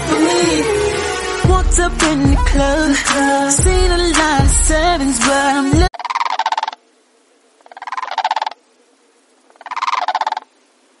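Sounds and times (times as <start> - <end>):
croaking animal call: 5.9 - 6.9, 7.5 - 10.7.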